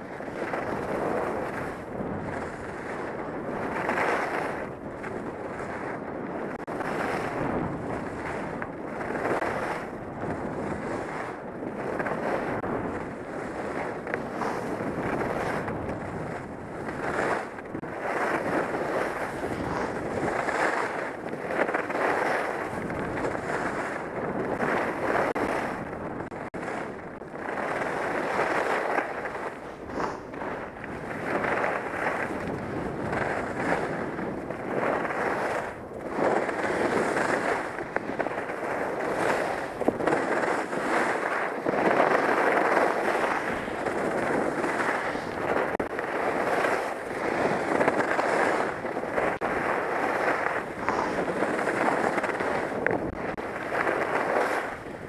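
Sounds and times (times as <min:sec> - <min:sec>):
skis scraping over snow: 0:00.0 - 0:55.0
wind buffeting microphone: 0:00.0 - 0:55.0.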